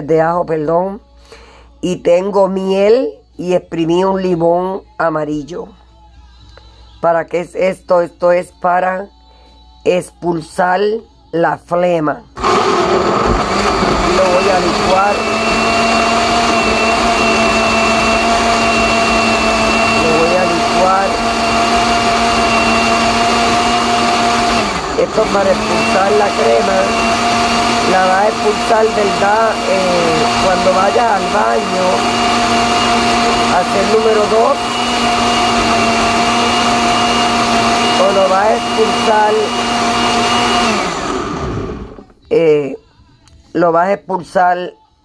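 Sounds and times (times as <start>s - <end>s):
blender motor running: 12.4s - 42.1s.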